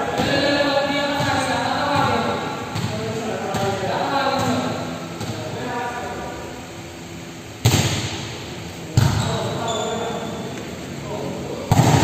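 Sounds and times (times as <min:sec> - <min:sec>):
volleyball hit by hands: 0:07.6 - 0:08.2, 0:11.7 - 0:12.0.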